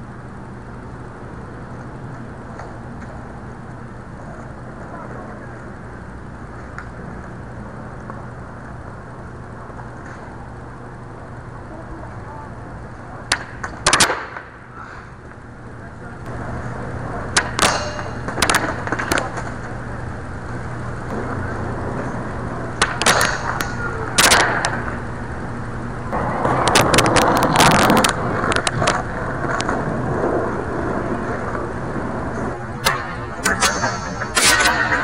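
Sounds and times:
skateboard wheels rolling on concrete: 0.0 - 35.0
skateboard clacks: 13.2 - 14.6, 16.2 - 19.8, 21.1 - 25.0, 26.1 - 35.0
skateboard grinding on metal bar: 17.3 - 19.8, 21.1 - 25.0, 26.2 - 35.0.

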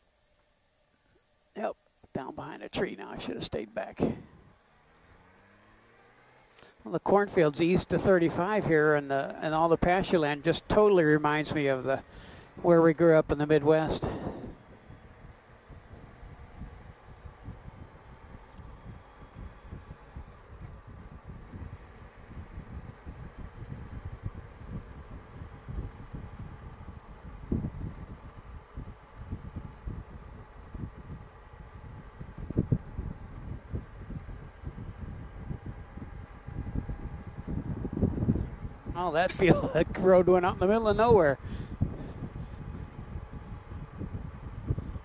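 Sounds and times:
motorcycle engine and road hum: 0.0 - 45.0
wind buffeting microphone: 13.8 - 45.0.

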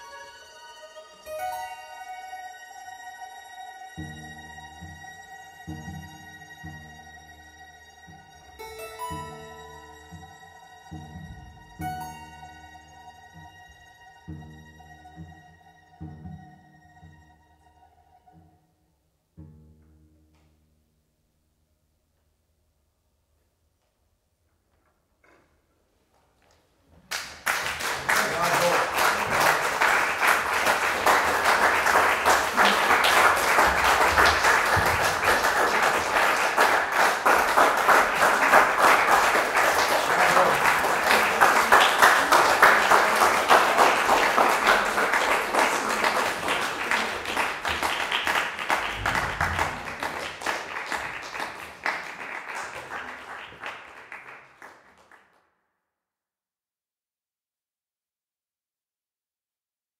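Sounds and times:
audience applauding: 27.1 - 55.4.

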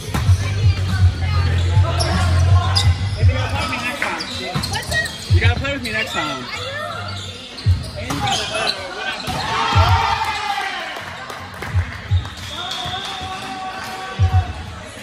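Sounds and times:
players shouting: 8.3 - 11.0.

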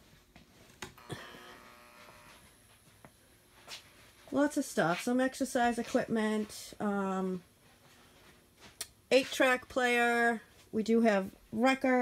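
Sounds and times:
faint electrical buzz: 0.0 - 12.0.

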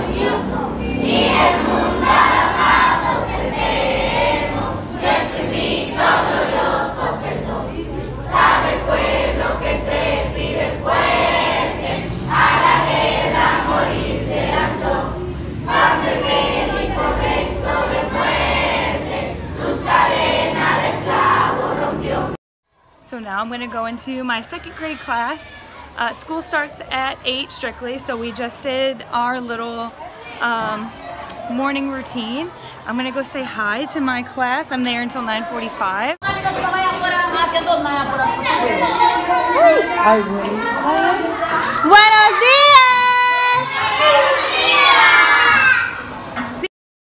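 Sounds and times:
children singing in unison: 0.0 - 22.4, 43.6 - 45.9
woman shouting a greeting: 41.8 - 43.7.

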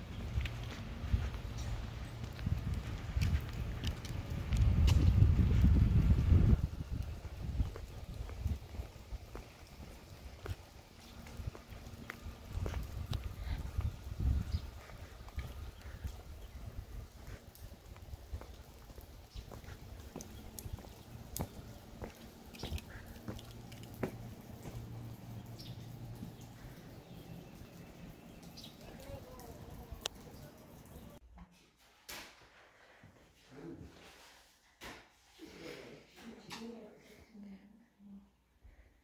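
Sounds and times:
low outdoor rumble: 0.0 - 31.2
footsteps: 0.3 - 25.4.

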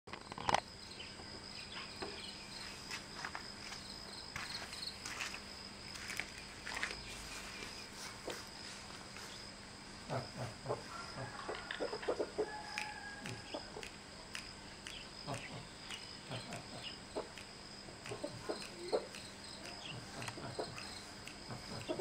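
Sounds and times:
insects trilling: 0.1 - 22.0
footsteps: 2.5 - 9.5.

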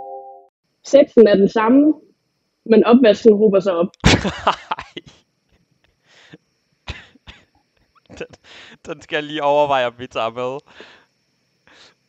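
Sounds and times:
stifled laughter: 4.1 - 5.2.

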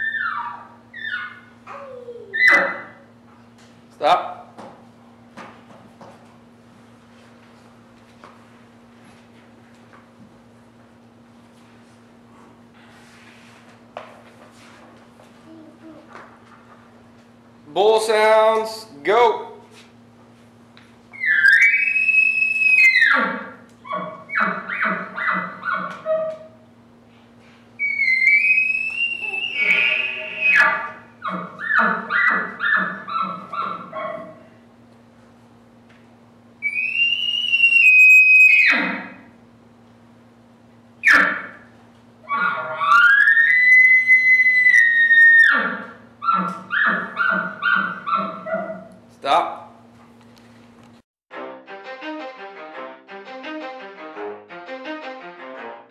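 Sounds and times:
elk bugle call whistle: 27.8 - 31.0, 36.7 - 39.2, 41.0 - 41.6.

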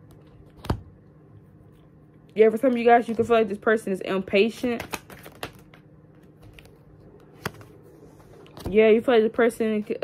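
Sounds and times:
cards clicking against deck: 4.8 - 5.8.

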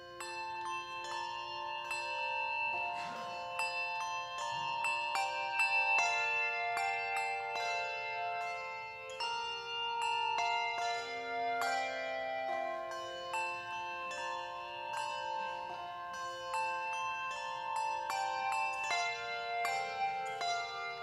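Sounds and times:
handbell choir playing: 0.0 - 21.0.

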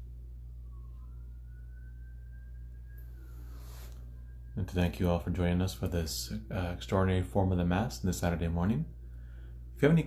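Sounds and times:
steady low hum: 0.0 - 10.0
faint thin rising tone: 0.5 - 5.1.

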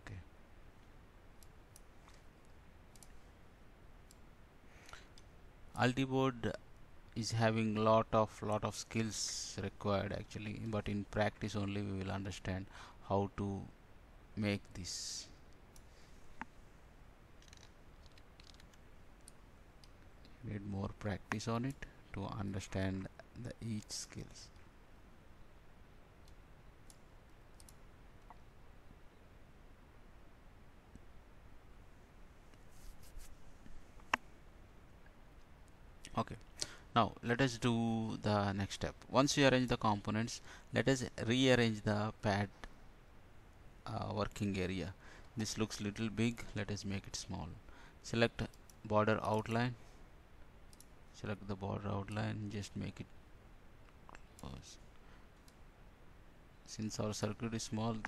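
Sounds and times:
computer mouse clicks: 2.9 - 3.2, 17.4 - 20.1, 26.2 - 28.4, 50.7 - 50.9.

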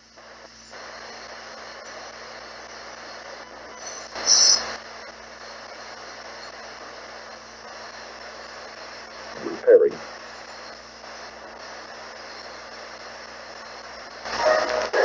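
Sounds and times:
radio static hiss: 0.0 - 15.0.

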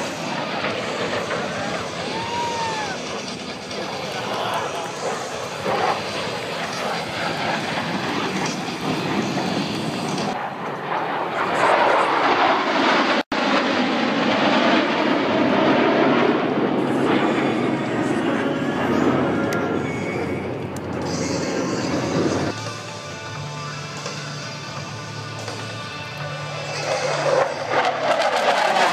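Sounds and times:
jet aircraft flying over: 0.0 - 28.9.

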